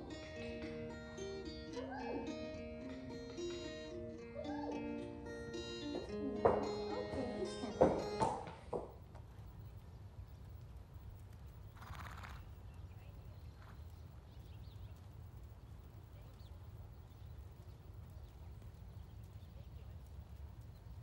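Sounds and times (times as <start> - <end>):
horse walking on sand: 6.5 - 21.0.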